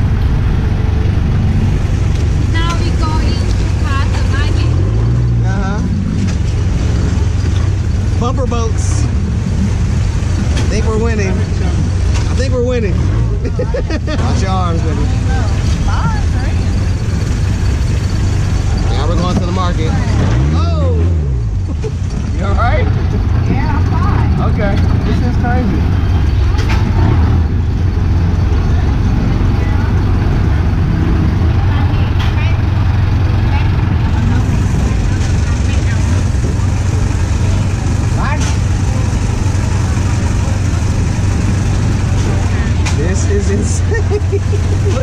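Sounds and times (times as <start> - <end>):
boat engine droning: 0.0 - 45.0.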